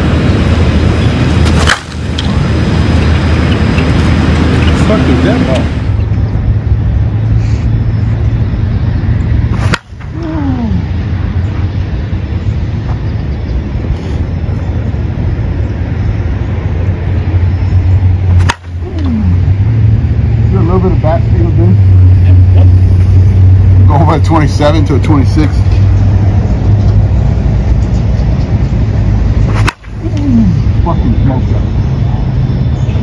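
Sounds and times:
steady low rumble: 0.0s - 33.0s
bat striking ball: 1.4s - 2.4s, 9.5s - 10.2s, 18.3s - 19.1s, 29.4s - 30.0s.

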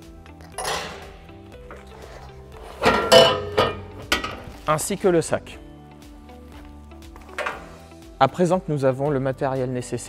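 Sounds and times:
background music: 0.0s - 10.0s
metal crank handle clanking: 0.5s - 1.9s, 2.7s - 4.5s, 7.3s - 7.8s.

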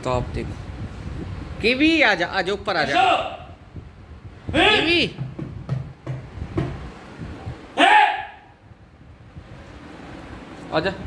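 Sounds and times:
short voiced cry: 7.8s - 8.5s.

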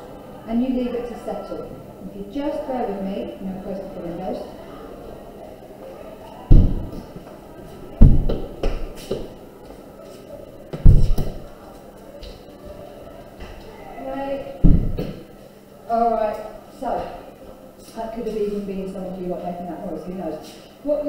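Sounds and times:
windows banging shut: 6.5s - 7.1s, 8.0s - 9.3s, 10.8s - 11.5s, 14.6s - 15.2s.

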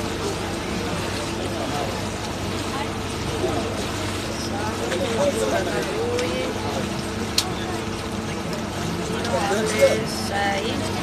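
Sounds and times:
boat engine humming: 0.0s - 11.0s
people talking: 0.0s - 11.0s.

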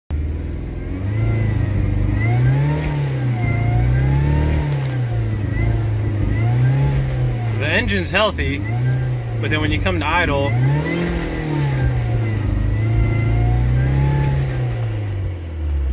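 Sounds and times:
car engine revving: 0.1s - 15.9s.

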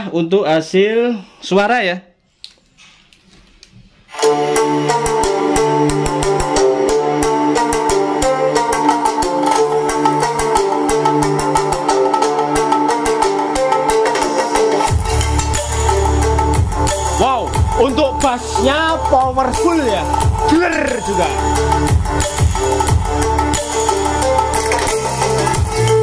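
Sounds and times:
steady beat: 4.2s - 26.0s
deep bass: 14.9s - 26.0s.

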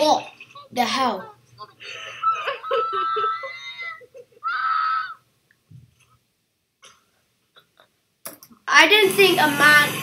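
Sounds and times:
high-pitched screams: 2.2s - 5.3s.

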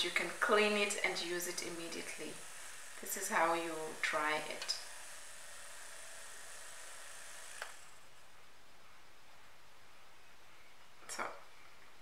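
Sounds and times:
small motor whirring: 0.0s - 8.2s.

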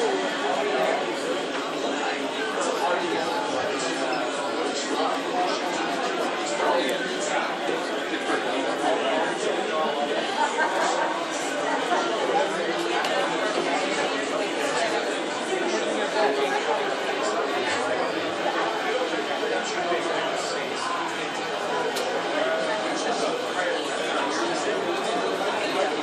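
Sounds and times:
chatter of many voices: 0.0s - 26.0s.

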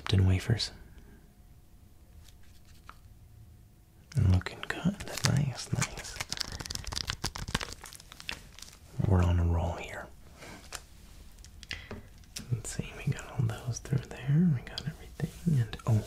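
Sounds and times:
plastic wrapper crinkling: 4.4s - 9.0s
soft vocal sounds: 11.7s - 16.0s.

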